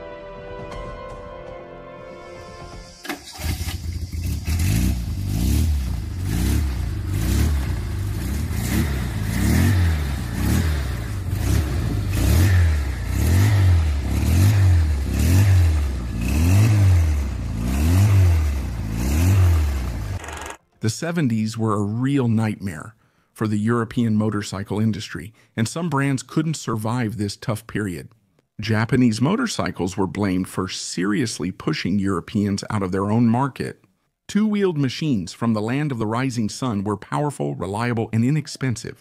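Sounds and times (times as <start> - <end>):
engine revving: 3.0 - 20.6.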